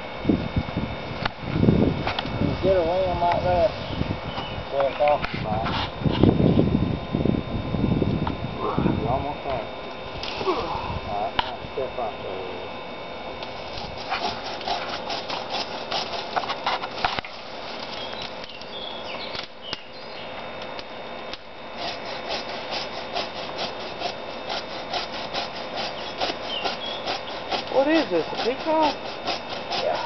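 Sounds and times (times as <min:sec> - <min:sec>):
saw cutting wood: 0:13.5 - 0:18.4, 0:21.7 - 0:30.0.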